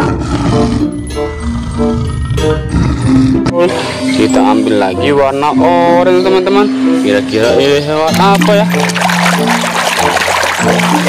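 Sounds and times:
lion roaring: 0.0 - 3.6
music of short repeated notes: 0.8 - 11.0.

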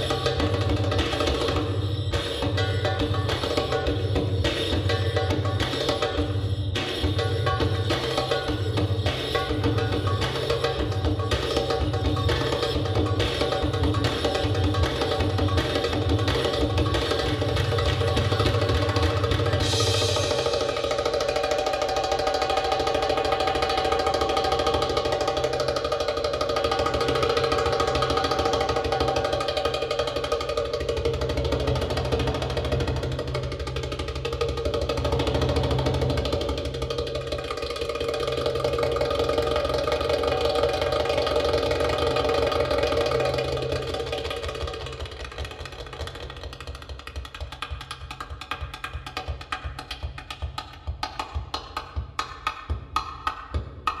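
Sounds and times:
goblet drum patterns: 0.0 - 54.0.

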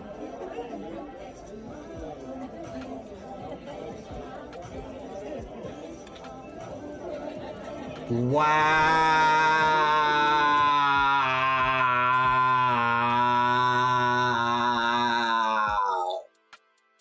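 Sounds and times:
murmur of diners' voices: 0.0 - 16.3
faint music: 0.0 - 17.0.

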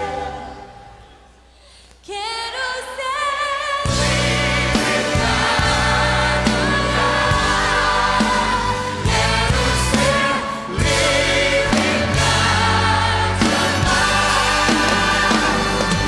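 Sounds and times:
person singing with vibrato: 0.0 - 1.4
gospel worship band: 0.0 - 16.0.

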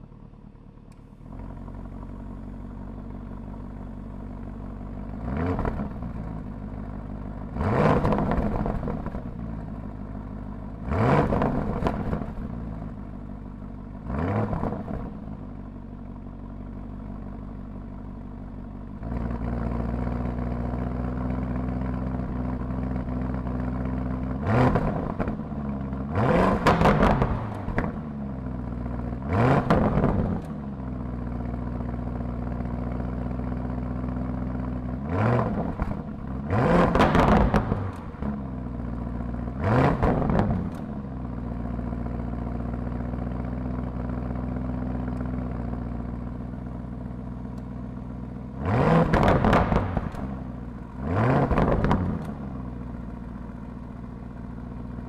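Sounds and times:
car engine idling and revving: 0.0 - 55.0.

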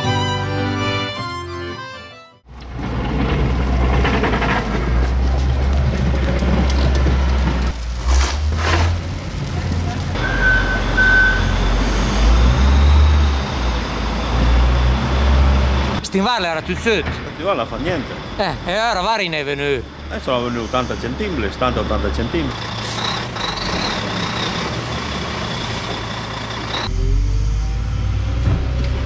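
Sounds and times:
violin music: 0.0 - 2.5
heavy low rumble: 2.5 - 10.2
snow shovel scraping: 7.9 - 9.2
short high beeps: 10.2 - 11.8.

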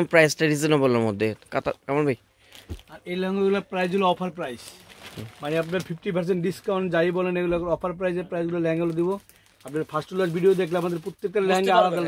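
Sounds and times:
man talking: 2.9 - 12.0.

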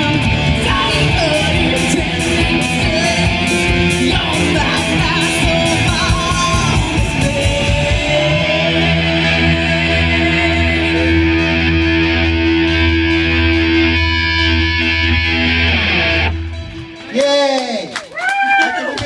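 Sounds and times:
rock band sustained chord: 0.0 - 17.0.

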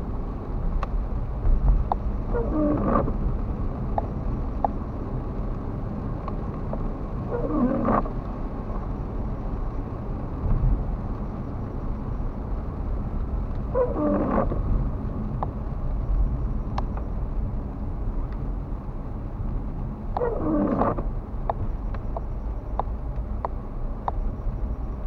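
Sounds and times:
car engine and tyre rumble: 0.0 - 25.0
windshield wipers rubbing on glass: 2.4 - 3.2, 7.3 - 8.1, 13.8 - 14.7, 20.2 - 21.1.

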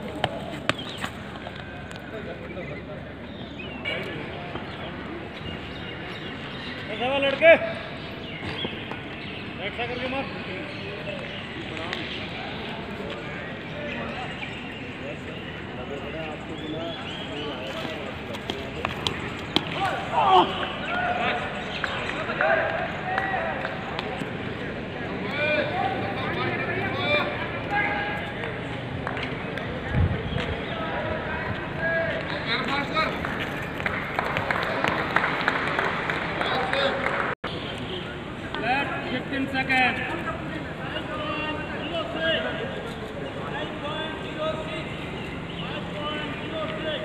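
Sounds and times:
distant people talking: 0.0 - 47.0
open-air background noise: 0.0 - 47.0
outdoor background noise: 0.0 - 47.0.

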